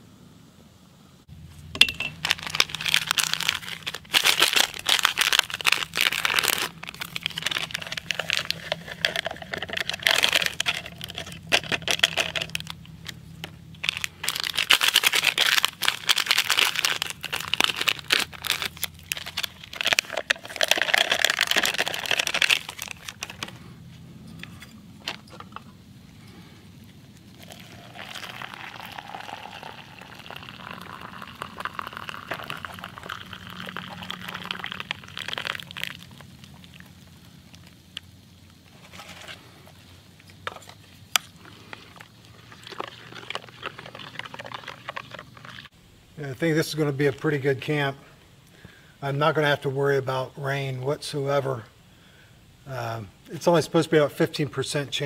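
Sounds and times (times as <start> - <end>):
foil packets crinkling and tearing: 2.1 - 23.8, 27.1 - 38.1, 38.7 - 45.7
powder shaken into plastic mug: 2.2 - 12.8, 13.8 - 23.6, 42.4 - 45.7
liquid pouring into mug: 27.3 - 36.8, 42.4 - 45.7.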